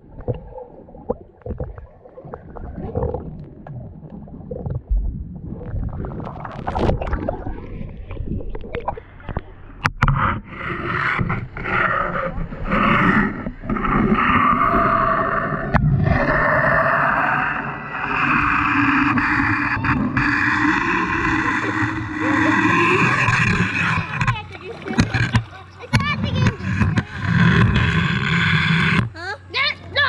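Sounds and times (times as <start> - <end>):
pool water splashing: 0.0 - 30.0.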